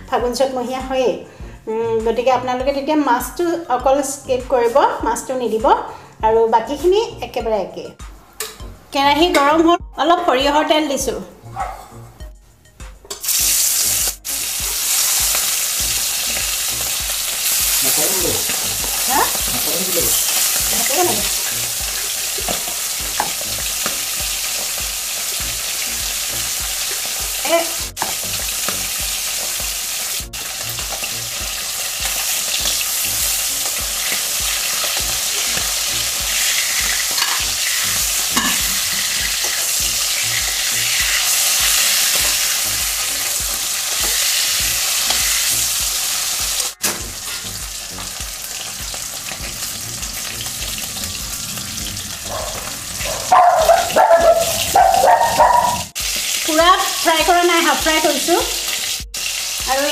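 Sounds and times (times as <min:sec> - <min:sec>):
fish sizzling in hot oil: 0:13.2 - 0:59.9
metal spatula in pan: 0:36.4 - 0:39.8.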